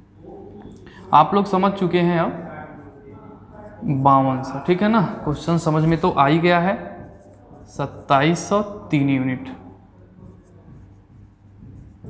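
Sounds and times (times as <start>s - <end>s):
low room hum: 0.0s - 12.0s
marker pen on whiteboard: 0.1s - 12.0s.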